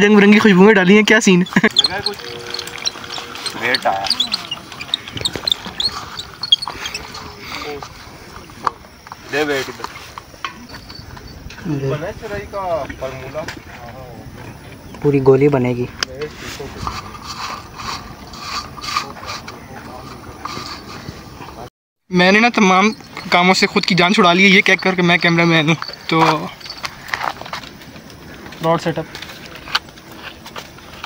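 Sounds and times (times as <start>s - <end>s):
small birds chirping: 0.7s - 9.6s, 10.2s - 15.8s, 19.5s - 29.6s
faint indistinct voices: 16.0s - 21.7s.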